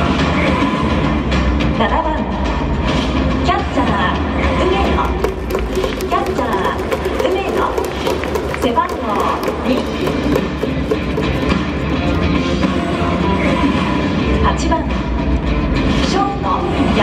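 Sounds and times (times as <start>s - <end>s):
music over public address: 0.0s - 17.0s
crowd noise: 4.4s - 15.6s
sharp claps: 4.9s - 12.2s.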